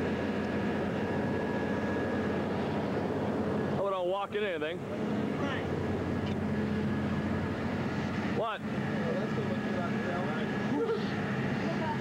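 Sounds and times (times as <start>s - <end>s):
steady low drone: 0.0s - 12.0s.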